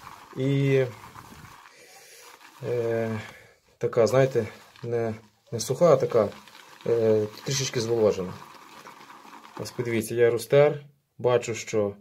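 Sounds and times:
shaving brush swishing lather: 0.0s - 10.3s.

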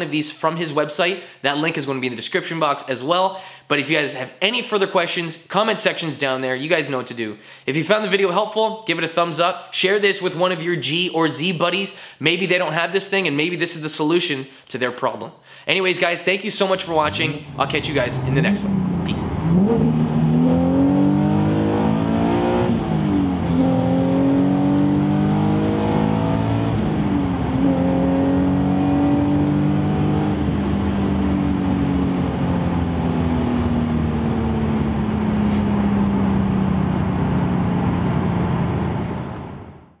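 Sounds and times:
car engine accelerating: 16.8s - 39.9s.

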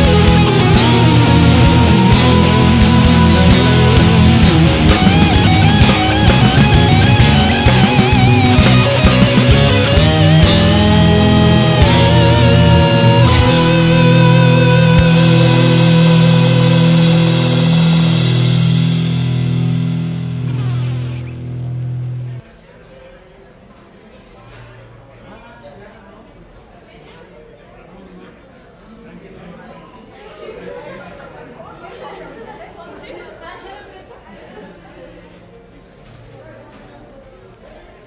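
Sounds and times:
heavy metal band final chord: 0.0s - 22.4s
long vibrato note: 0.0s - 22.4s
indistinct chatter: 0.0s - 38.0s.

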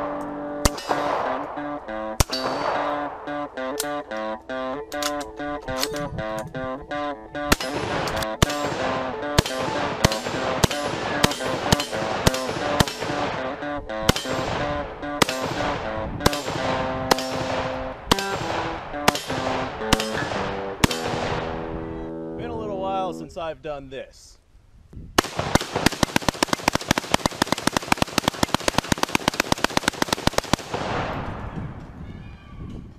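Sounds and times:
rifle shots: 0.0s - 3.9s, 7.5s - 21.7s, 25.2s - 31.6s
background music: 0.0s - 23.4s.

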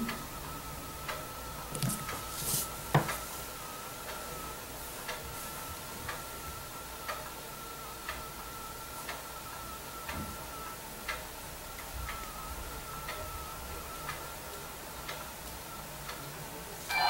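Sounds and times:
clock ticking: 0.0s - 2.2s, 7.0s - 7.3s, 11.1s - 12.4s.

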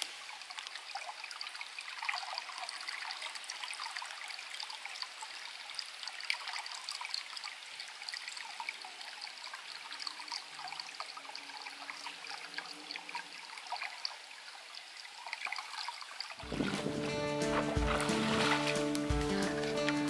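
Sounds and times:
creek trickling between stones: 0.0s - 20.0s.

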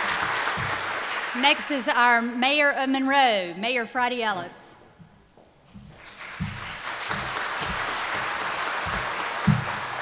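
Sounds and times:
audience applauding: 0.0s - 1.9s, 5.9s - 10.0s.

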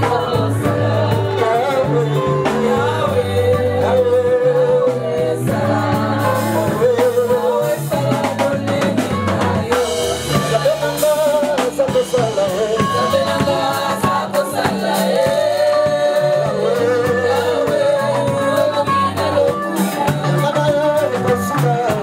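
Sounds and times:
drum kit: 0.0s - 22.0s
electric bass: 0.0s - 22.0s
electric guitar: 0.0s - 22.0s
keyboard: 0.0s - 22.0s
person singing: 0.0s - 22.0s.

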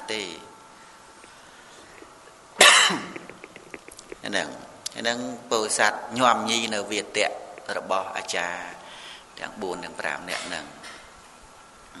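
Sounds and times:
man coughing: 2.6s - 3.9s.

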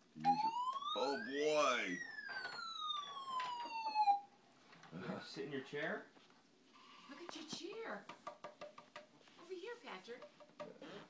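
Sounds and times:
toy siren wailing: 0.2s - 4.3s.

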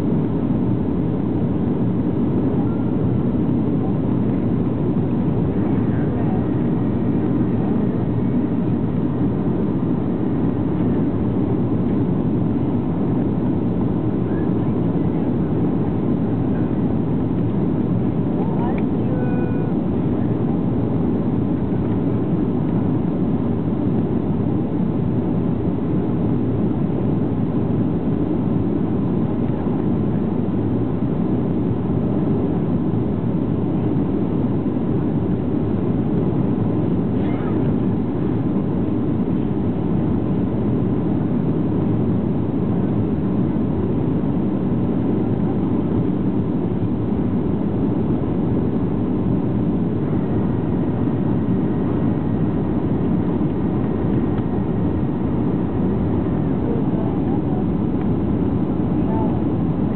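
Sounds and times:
airplane cabin airflow and engine drone: 0.0s - 59.9s.

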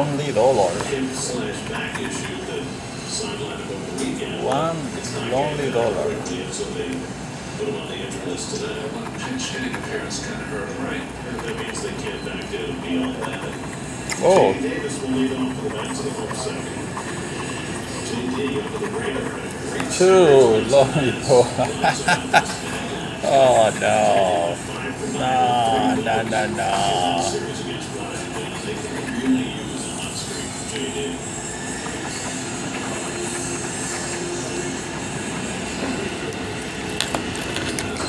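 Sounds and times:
key scratching lottery ticket: 13.0s - 20.0s, 26.7s - 30.6s
key scraping scratch-off ticket: 15.5s - 20.0s, 28.1s - 30.5s, 31.8s - 38.0s.

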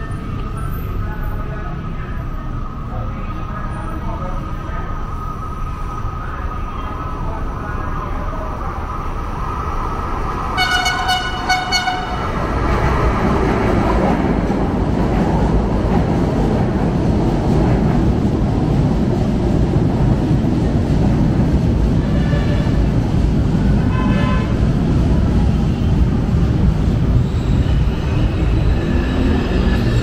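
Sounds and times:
train wheels rumbling on rails: 0.0s - 30.0s
train horn toots: 10.6s - 12.3s, 22.0s - 22.9s, 23.9s - 24.6s.

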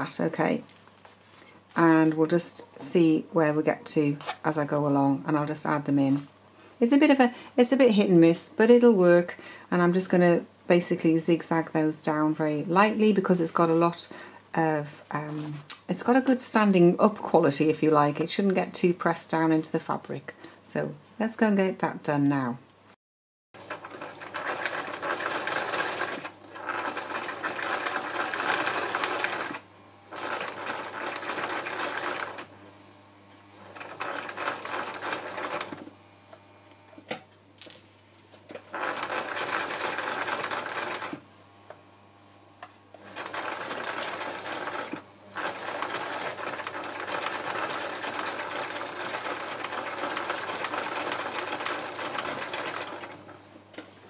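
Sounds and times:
sewing machine stitching: 23.6s - 32.5s, 33.6s - 35.9s, 38.5s - 41.2s, 43.0s - 53.2s.

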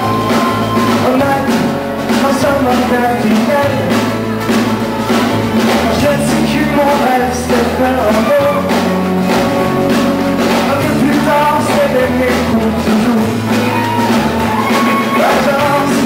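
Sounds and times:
drum kit: 0.0s - 16.0s
electric bass: 0.0s - 16.0s
electric guitars: 0.0s - 16.0s
lead vocal singing: 0.0s - 16.0s.

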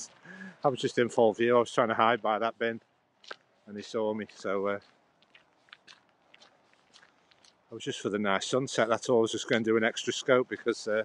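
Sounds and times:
faint small clicks and ticks: 4.2s - 7.6s.

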